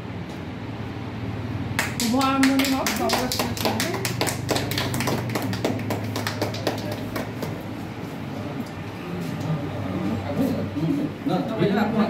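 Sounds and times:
group clapping: 1.8s - 7.9s.

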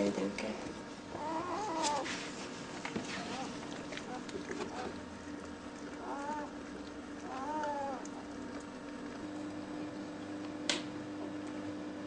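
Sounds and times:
puppy mewing squeal: 1.1s - 2.1s, 6.0s - 6.6s, 7.2s - 8.3s.

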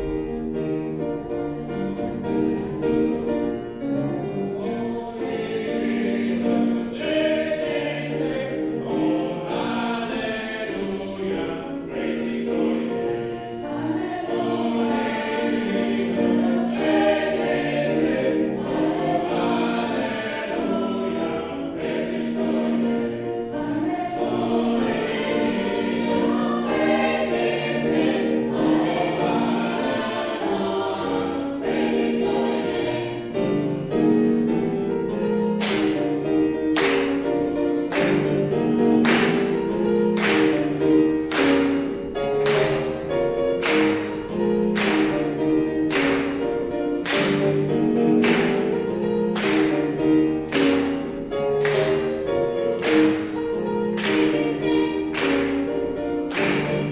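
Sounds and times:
piano accompaniment: 0.0s - 56.9s
choir singing gospel song: 1.4s - 34.4s, 35.3s - 56.9s.

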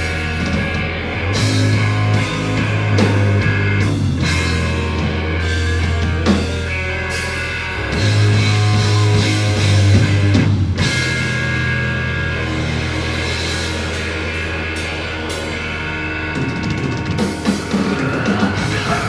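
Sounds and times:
distorted guitar and bass chords: 0.0s - 19.0s.

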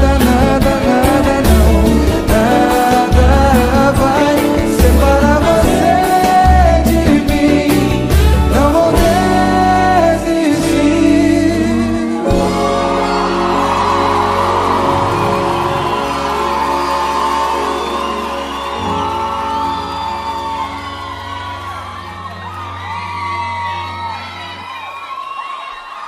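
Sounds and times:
live band chords: 0.0s - 24.7s
audience cheering and whooping: 12.2s - 26.0s.

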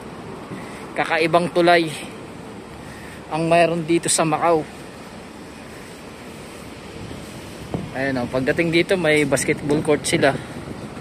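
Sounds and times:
wind on microphone: 6.8s - 11.0s.

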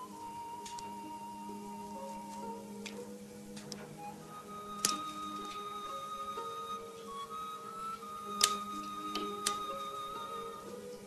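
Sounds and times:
soft film score music: 0.0s - 11.0s
shears snipping: 2.3s - 4.1s, 4.8s - 5.7s, 8.4s - 9.7s.

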